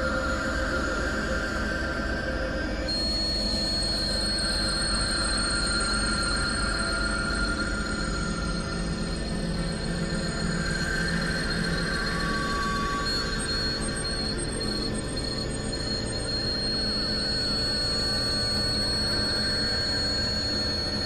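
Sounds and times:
noisy low synthesizer drone: 0.0 - 21.0
piercing high tone: 2.9 - 21.0.

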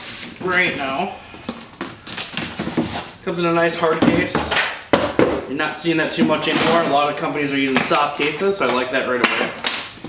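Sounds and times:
cardboard sleeve scraping rustles: 6.3 - 7.0.

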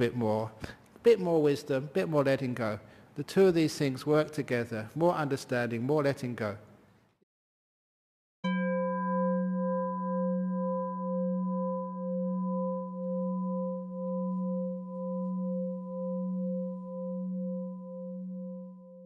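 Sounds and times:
singing bowl ringing: 8.4 - 19.0.

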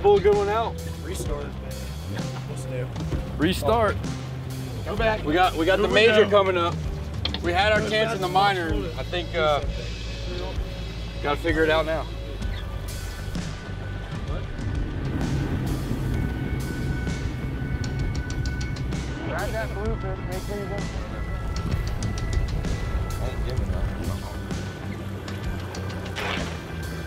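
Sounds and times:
background music: 0.0 - 27.0
outboard engines droning: 0.0 - 27.0
rushing water: 0.0 - 27.0.

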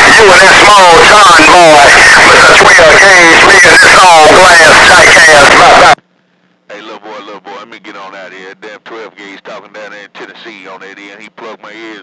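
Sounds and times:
two-way radio voice: 0.0 - 6.0, 6.7 - 12.0
very loud voice: 0.0 - 6.0.

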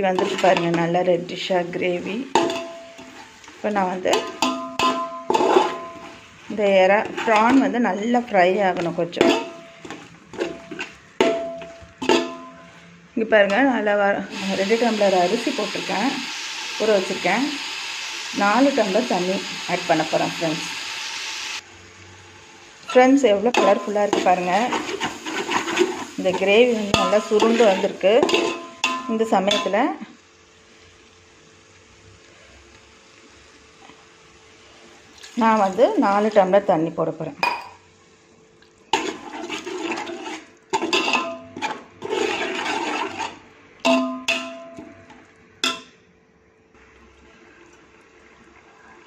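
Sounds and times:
gravy sizzling in metal pot: 0.0 - 46.0, 46.8 - 49.0.

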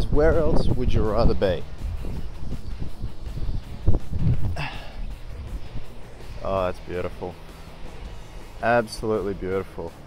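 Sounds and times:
wind buffeting microphone: 0.0 - 9.7.

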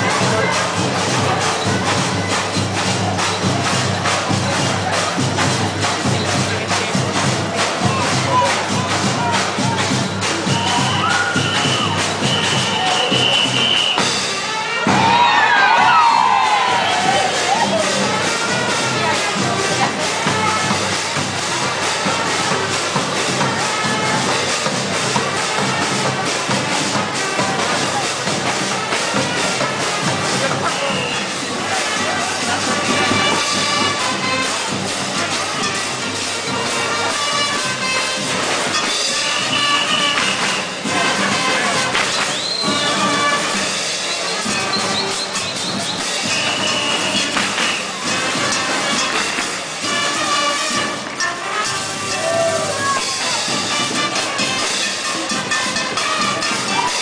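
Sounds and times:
crowd cheering and shouting: 0.0 - 57.0
drum troupe playing parade beat: 0.0 - 57.0.

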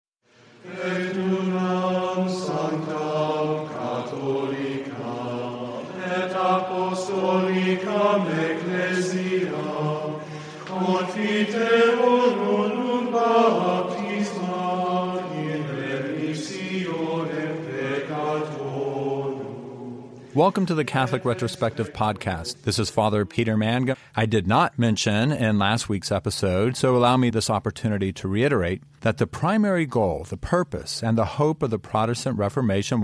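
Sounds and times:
choral chant with held notes: 0.3 - 22.6.

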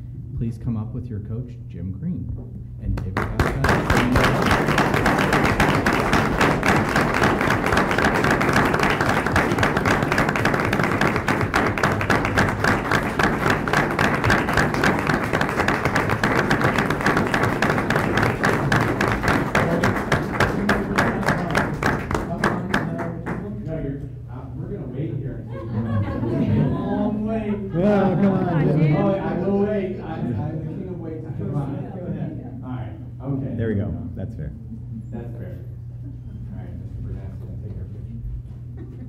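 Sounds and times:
crowd applauding: 3.0 - 23.5.

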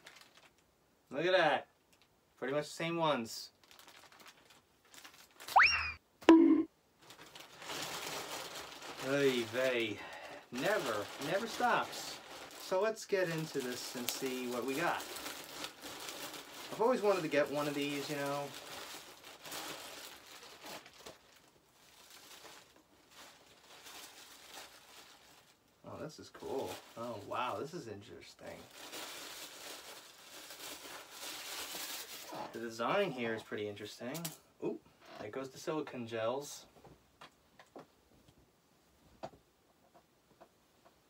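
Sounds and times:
packaging crinkling and rustling: 0.0 - 0.6, 3.5 - 5.6, 7.0 - 25.7, 26.3 - 27.6, 28.4 - 32.7
dropping cartoon tone: 5.5 - 6.7
cartoon slide whistle boing: 5.6 - 6.7.

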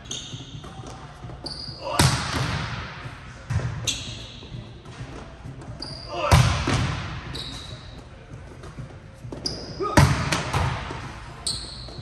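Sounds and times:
ball bouncing on court: 0.0 - 12.0.

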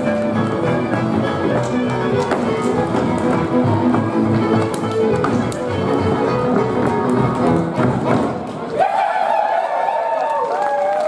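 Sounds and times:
boots stamping on stage: 0.0 - 8.6
band playing folk dance music: 0.0 - 8.7.

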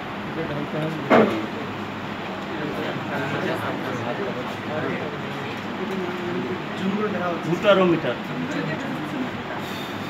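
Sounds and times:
faint voices murmuring: 0.0 - 10.0
steady background noise: 0.0 - 10.0
brief hiss: 9.6 - 10.0.

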